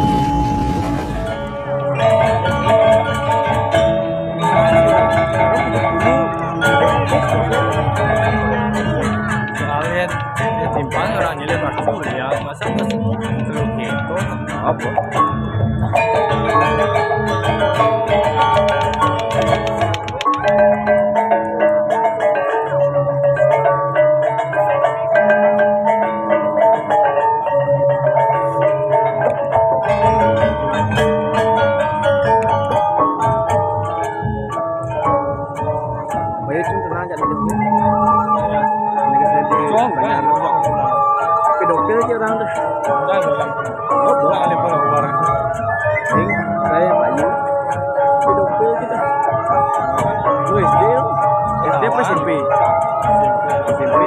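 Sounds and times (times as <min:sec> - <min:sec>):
gamelan music: 0:00.0 - 0:54.0.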